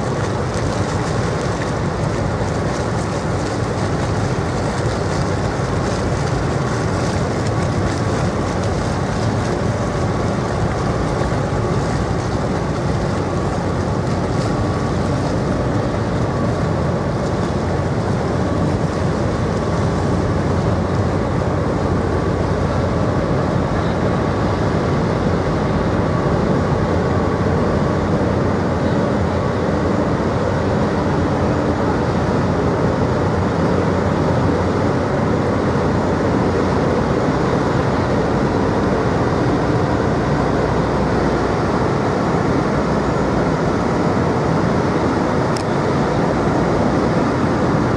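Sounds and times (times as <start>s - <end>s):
faint steady whine: 0.0s - 47.9s
ship engines running: 0.0s - 47.9s.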